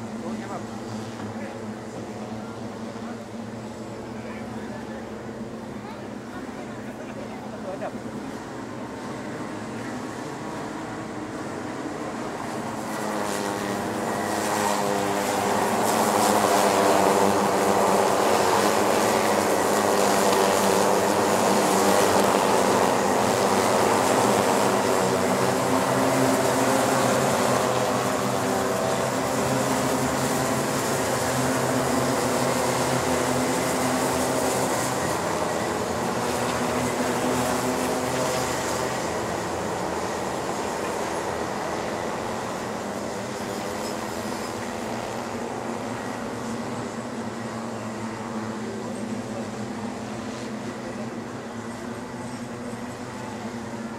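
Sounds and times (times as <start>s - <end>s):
kart engines racing past: 11.5s - 52.5s.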